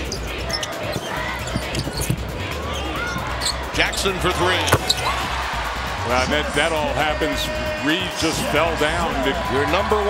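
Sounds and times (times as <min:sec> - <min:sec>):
arena crowd noise: 0:00.0 - 0:10.0
sneaker squeaks: 0:00.5 - 0:02.2, 0:04.6 - 0:05.2
basketball dribbling on hardwood: 0:04.7 - 0:05.1.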